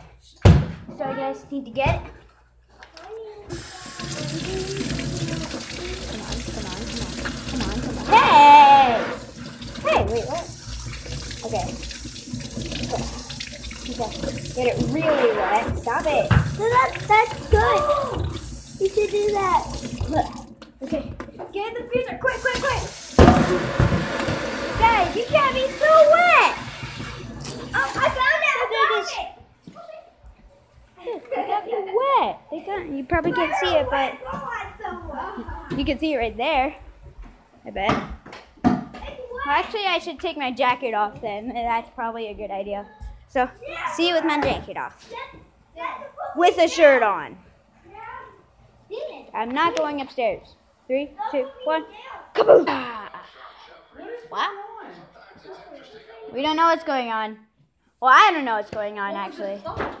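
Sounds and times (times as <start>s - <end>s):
children talking and calling out: 2.8s - 11.9s, 12.6s - 23.2s, 24.6s - 26.8s, 27.6s - 30.2s, 31.0s - 36.8s, 39.0s - 40.3s, 42.6s - 50.5s, 51.1s - 53.4s
water running into metal sink: 3.5s - 20.6s, 22.3s - 28.3s.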